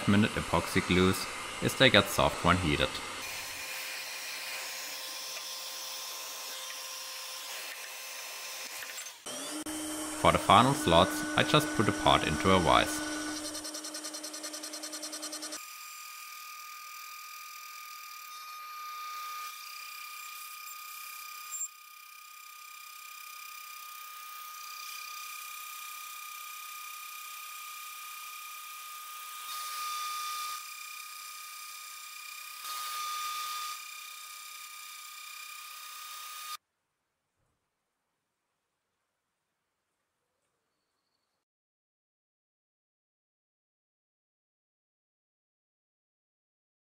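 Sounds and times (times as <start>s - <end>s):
end mill cutting metal: 0.0s - 36.5s
spindle whining: 8.7s - 15.6s.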